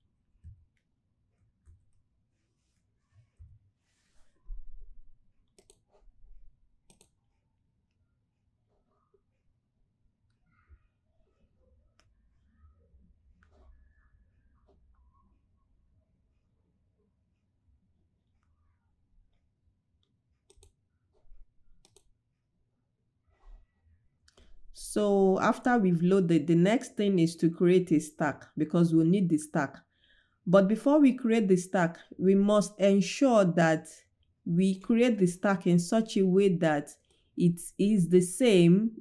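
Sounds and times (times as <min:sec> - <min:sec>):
computer mouse clicking: 0:05.4 - 0:06.0, 0:06.8 - 0:07.2, 0:20.0 - 0:20.8, 0:21.8 - 0:22.2.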